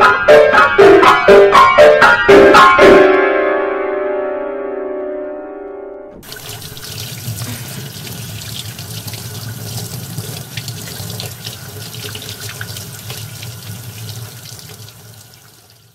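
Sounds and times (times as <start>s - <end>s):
running water splashing: 6.1s - 15.9s
water drips: 6.1s - 15.9s.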